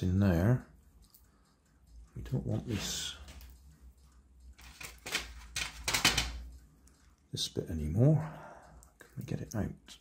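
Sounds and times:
plastic parts clicking and scraping: 4.6s - 6.6s.

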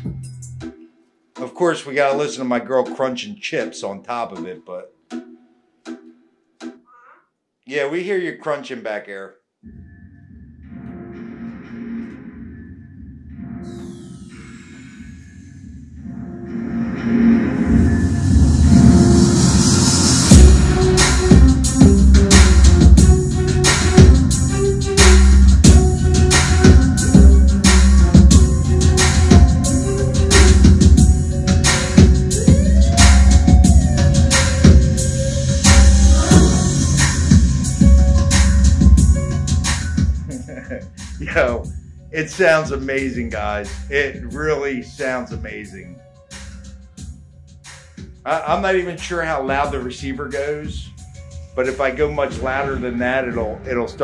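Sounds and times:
music through floor speakers: 0.0s - 0.6s, 16.9s - 41.8s.

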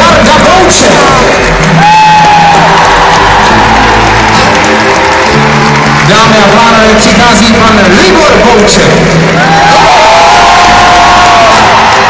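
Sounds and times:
steady bass line: 0.0s - 11.9s
guitar: 0.0s - 12.0s.

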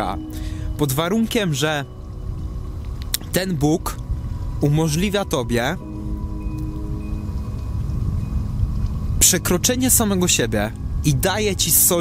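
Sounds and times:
soft background music: 0.0s - 12.0s
wind buffeting microphone: 0.0s - 12.0s.

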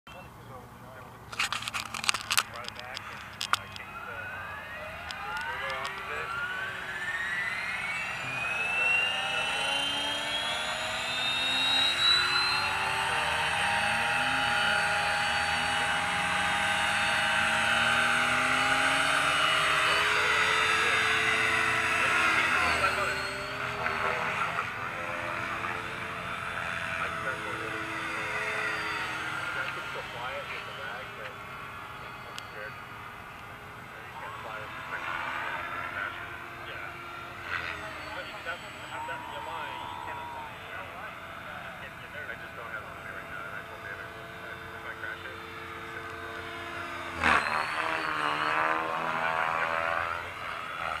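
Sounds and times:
helicopter motor and rotor whine: 0.2s - 51.0s.

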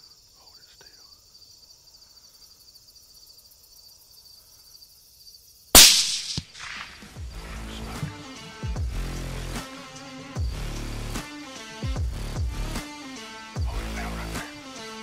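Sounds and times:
faint whispering: 0.0s - 1.3s
crickets chirring: 0.0s - 8.8s
gunshot echoing: 5.8s - 7.3s.

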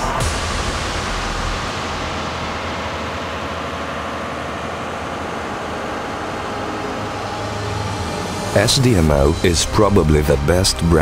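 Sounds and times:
diesel generator running: 0.0s - 11.0s.

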